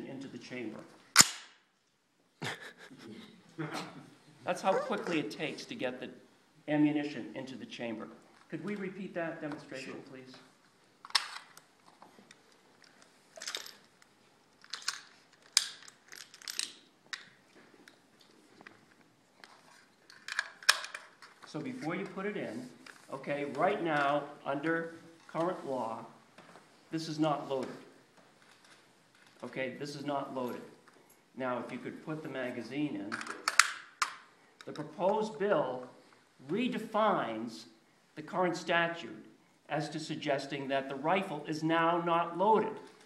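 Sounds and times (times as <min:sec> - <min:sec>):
metallic clicks of rifle handling: 0:11.0 - 0:11.7, 0:12.3 - 0:18.7, 0:19.6 - 0:21.5, 0:33.1 - 0:34.8
rifle bolt slamming forward: 0:33.2 - 0:34.2.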